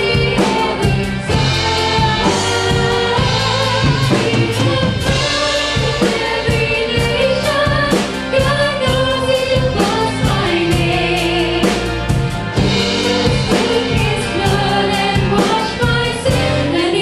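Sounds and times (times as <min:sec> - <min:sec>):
drum beat: 0:00.0 - 0:11.2
bass guitar: 0:00.0 - 0:17.0
group singing gospel: 0:00.0 - 0:17.0.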